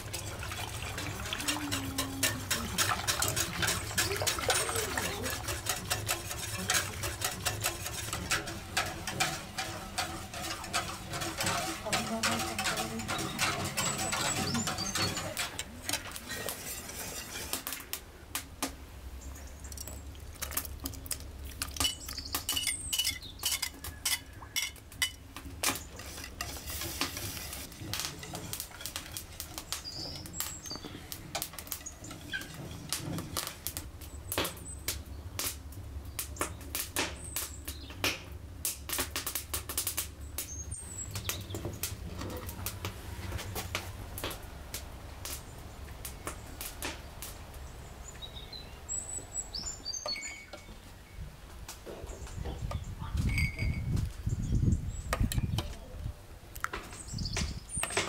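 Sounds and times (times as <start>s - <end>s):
whisk clinking in metal saucepan: 0.0s - 15.6s
bird chirps: 48.0s - 51.2s.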